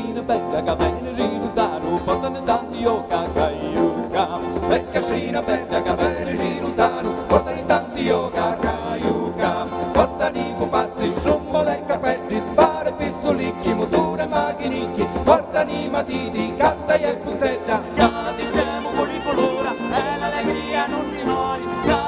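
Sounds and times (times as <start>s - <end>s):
strummed acoustic guitars: 0.0s - 22.0s
violin: 0.0s - 22.0s.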